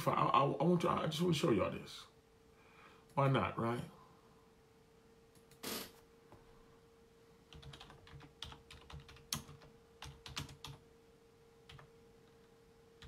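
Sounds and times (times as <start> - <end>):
steady faint hum: 0.0 - 13.0
faint keyboard typing: 7.5 - 10.8, 11.6 - 13.0.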